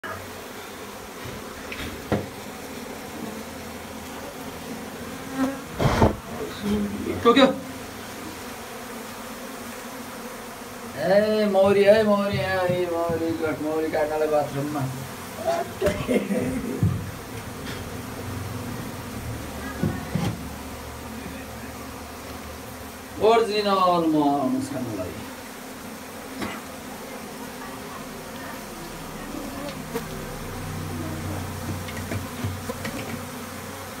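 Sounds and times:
bees buzzing: 0.0s - 34.0s
knock: 2.1s - 2.3s, 5.8s - 6.2s, 11.6s - 13.3s, 16.8s - 17.1s
sudden loud noise: 5.7s - 6.4s.

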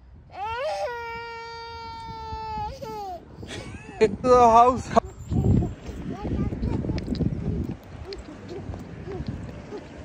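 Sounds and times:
toddler whining wail: 0.3s - 3.2s.

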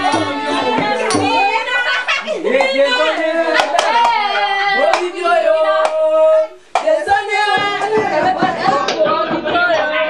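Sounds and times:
group of voices singing: 0.0s - 10.0s
sharp hand claps: 3.6s - 4.2s, 5.8s - 6.0s, 6.8s - 7.0s.

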